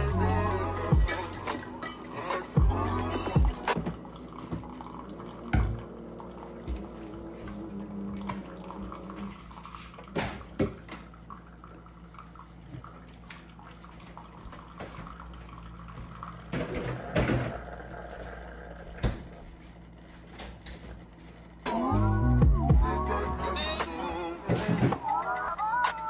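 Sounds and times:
coffee maker humming: 0:00.0 - 0:26.0
liquid trickling: 0:03.7 - 0:18.8.

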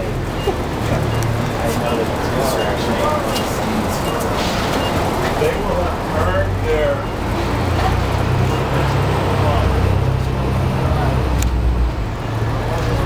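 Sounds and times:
heavy engine running: 0:00.0 - 0:13.0
people's voices: 0:00.0 - 0:13.0
street traffic rumble: 0:00.0 - 0:13.0.

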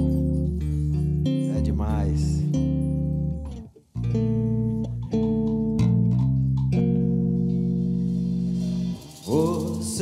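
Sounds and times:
electric bass guitar: 0:00.0 - 0:10.0.

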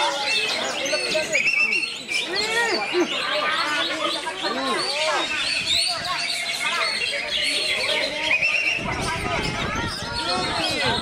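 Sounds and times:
songbirds chirping and whistling: 0:00.0 - 0:11.0.

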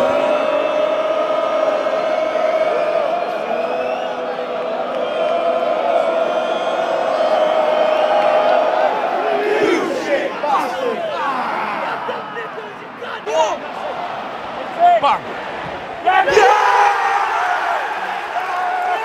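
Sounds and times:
crowd shouts: 0:00.0 - 0:19.0
stadium crowd chanting: 0:00.0 - 0:19.0.

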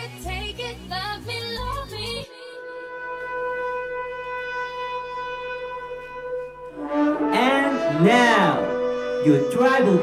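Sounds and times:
sustained horn or synth tone: 0:02.4 - 0:10.0.

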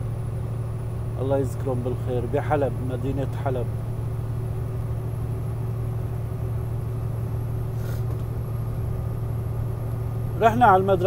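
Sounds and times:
vehicle cabin drone: 0:00.0 - 0:11.0.

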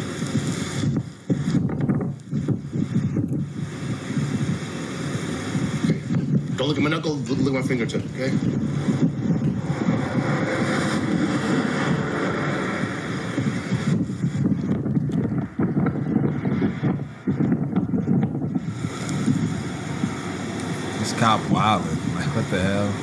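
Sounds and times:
wind buffeting microphone: 0:00.0 - 0:23.0
road traffic: 0:02.3 - 0:23.0.

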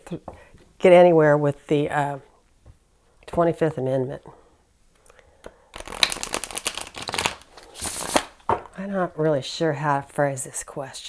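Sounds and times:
cards being shuffled: 0:05.8 - 0:08.4.

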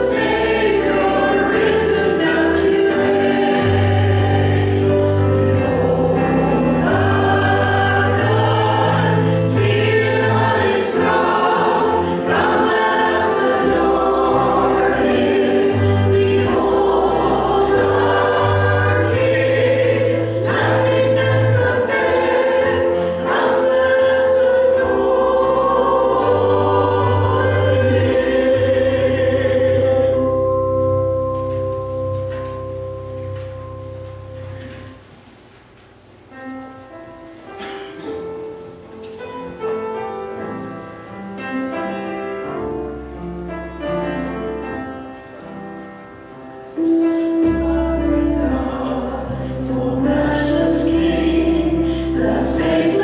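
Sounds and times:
voices singing worship song: 0:00.0 - 0:32.9, 0:46.7 - 0:53.0
instrumental accompaniment: 0:00.0 - 0:53.0.

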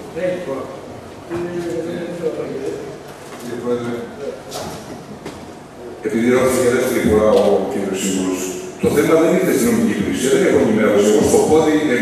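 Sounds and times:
men talking indistinctly: 0:00.1 - 0:04.9, 0:05.7 - 0:12.0.

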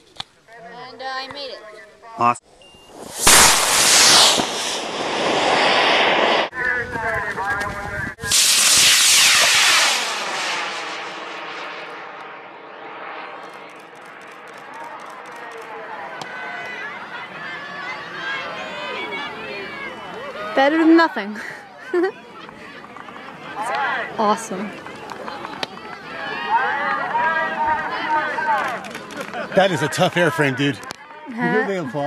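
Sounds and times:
rocket motor hissing roar: 0:02.9 - 0:06.5, 0:08.3 - 0:15.8
people exclaiming: 0:15.5 - 0:20.8, 0:24.8 - 0:29.6.

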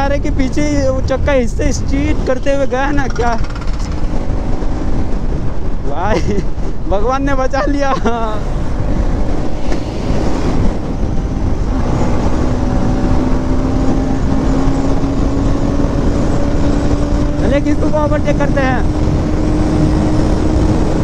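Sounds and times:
wind rush over microphone: 0:00.0 - 0:21.0
motorcycle engine accelerating: 0:01.9 - 0:05.9, 0:08.0 - 0:21.0.

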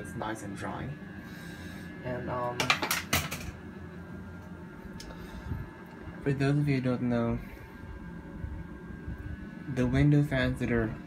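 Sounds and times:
fan motor humming: 0:00.0 - 0:11.0.

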